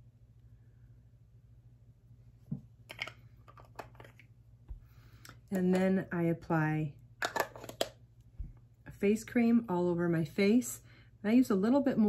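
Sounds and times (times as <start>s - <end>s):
light clicks of cosmetics containers: 2.9s - 4.3s.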